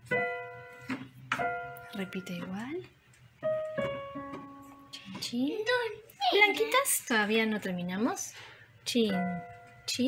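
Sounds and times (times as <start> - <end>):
soft digital piano notes: 0.0 - 6.0, 8.9 - 10.0.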